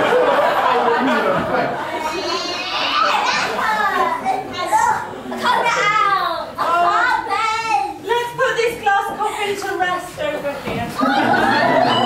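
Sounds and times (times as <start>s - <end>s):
voices talking and exclaiming: 0.9s - 12.0s.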